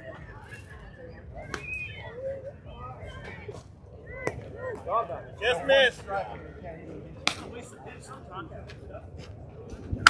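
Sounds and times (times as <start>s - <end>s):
faint chatter of people: 0.0s - 10.0s.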